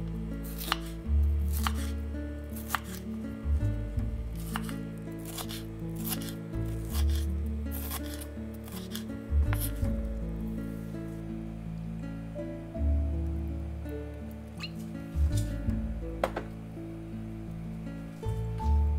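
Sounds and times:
knife chopping on wooden board: 0:00.6 - 0:00.9, 0:01.5 - 0:01.9, 0:02.6 - 0:03.0, 0:04.4 - 0:07.2, 0:07.8 - 0:09.8, 0:16.2 - 0:16.5.

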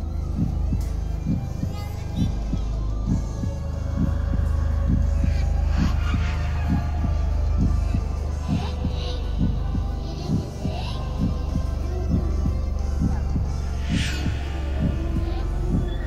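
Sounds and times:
heartbeat-like low thumps: 0:00.0 - 0:16.0
low ambient hum: 0:00.0 - 0:16.0.

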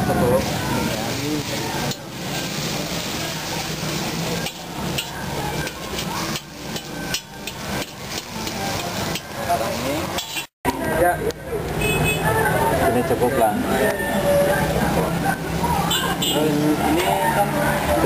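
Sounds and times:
noodles sizzling in a wok: 0:00.0 - 0:10.5
spatula scraping and knocking wok: 0:00.4 - 0:10.5.

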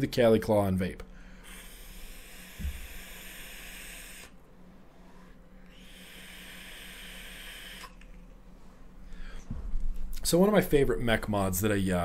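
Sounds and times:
vape hiss of air and vapour: 0:01.4 - 0:04.4, 0:05.0 - 0:08.3.

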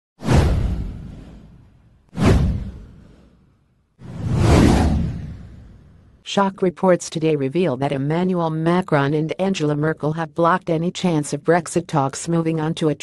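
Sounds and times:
whoosh sound effects: 0:02.2 - 0:06.2.

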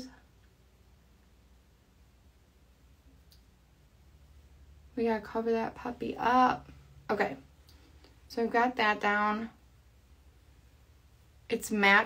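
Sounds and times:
faint room hum: 0:00.0 - 0:12.0
faint click: 0:03.1 - 0:03.5.

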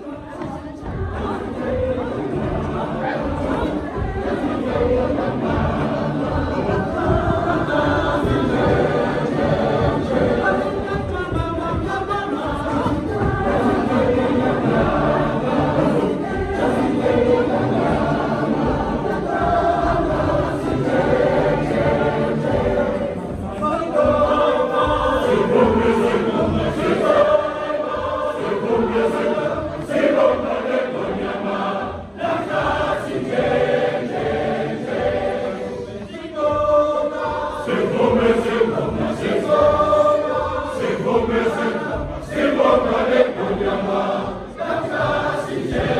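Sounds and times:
church choir singing: 0:00.0 - 0:45.9.

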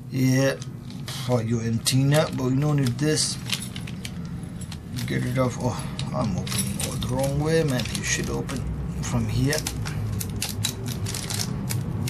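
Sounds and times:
plastic bag crinkling: 0:00.9 - 0:08.7.

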